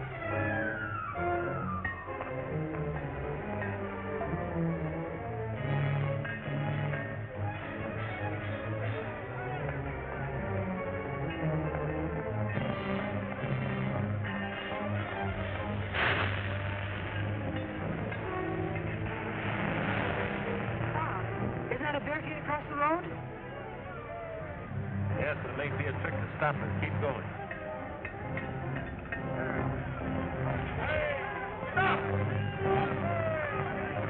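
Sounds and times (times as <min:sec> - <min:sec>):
orchestral film music: 0:00.0 - 0:34.0
voices calling out: 0:29.2 - 0:34.0.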